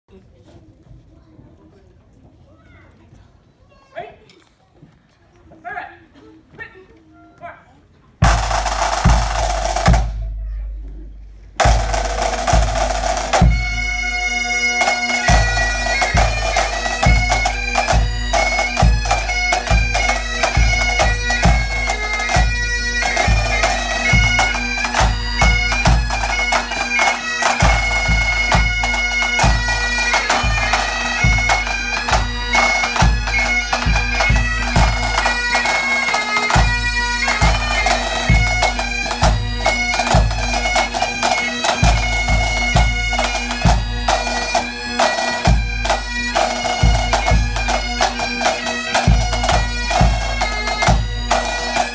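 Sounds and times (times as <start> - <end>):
snare drums: 8.2 - 10.3, 11.6 - 13.7
bagpipes playing a march: 8.2 - 10.4, 11.6 - 51.9
bass drum beating time: 8.2 - 10.5.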